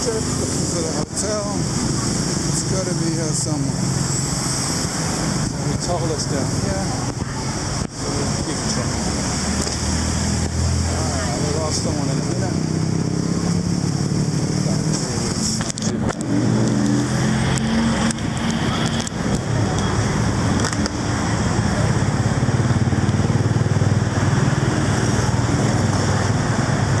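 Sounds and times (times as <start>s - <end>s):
car and motorbike engines: 0.0s - 27.0s
engine note rising: 0.0s - 27.0s.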